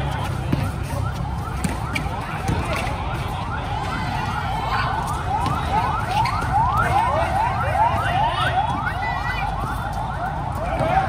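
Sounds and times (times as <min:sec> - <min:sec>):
siren yelping: 0:00.0 - 0:11.0.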